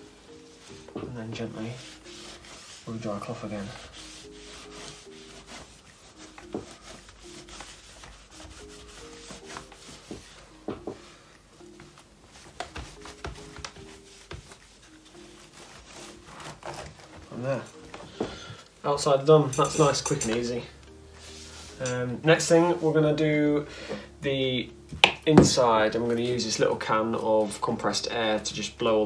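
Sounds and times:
cloth wiping laptop: 0:00.0 - 0:18.2, 0:19.8 - 0:23.6.

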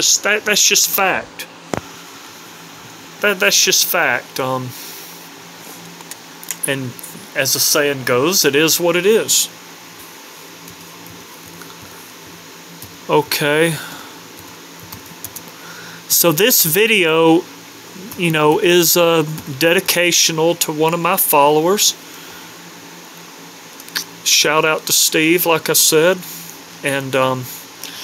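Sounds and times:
room noise hum and hiss: 0:00.0 - 0:28.0.

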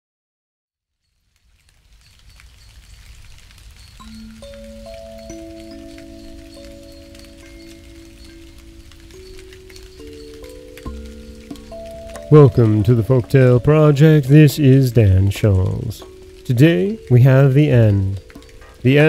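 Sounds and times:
rain-like patter: 0:00.8 - 0:19.0
soft sustained synth notes: 0:04.0 - 0:19.0.

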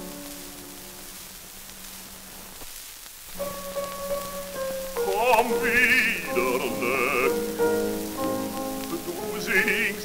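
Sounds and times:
piano accompaniment on old record: 0:00.0 - 0:10.0
record surface hiss and crackle: 0:00.0 - 0:10.0.

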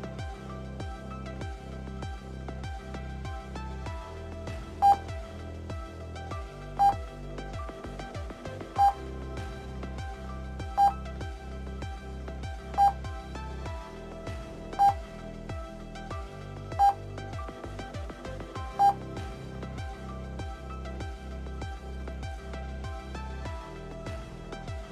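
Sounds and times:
background music: 0:00.0 - 0:24.9.

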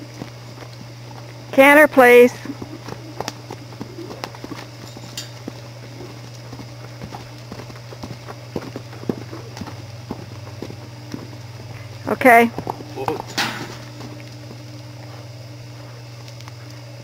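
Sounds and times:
horse hoofbeats on dirt: 0:00.0 - 0:15.3
steady low hum: 0:00.0 - 0:17.0.

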